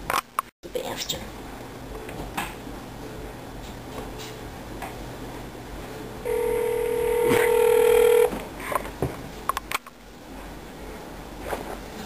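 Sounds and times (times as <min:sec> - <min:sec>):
phone ringback tone: 0:06.3 - 0:08.3.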